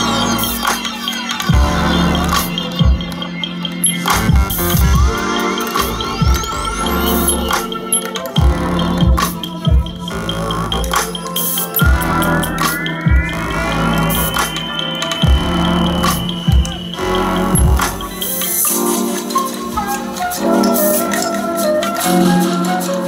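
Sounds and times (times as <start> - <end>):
electronic bass music: 0.0 - 22.9.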